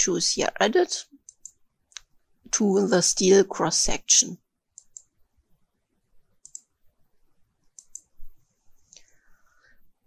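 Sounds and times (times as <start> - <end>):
computer mouse clicks: 1.2 - 2.1, 4.7 - 5.1, 6.4 - 6.8, 7.6 - 8.2.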